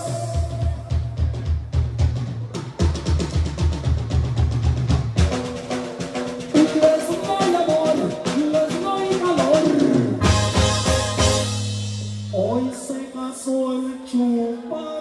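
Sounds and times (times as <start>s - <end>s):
live band through speakers: 0.0s - 15.0s.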